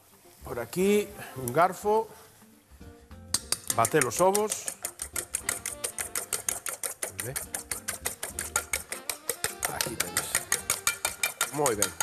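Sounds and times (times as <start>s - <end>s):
fork beating eggs in metal bowl: 3.3s - 12.0s.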